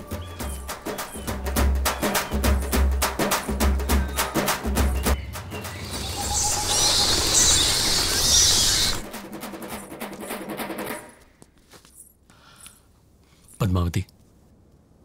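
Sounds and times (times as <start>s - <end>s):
bats chirping: 0.0s - 9.1s
bat wings fluttering: 5.5s - 10.3s.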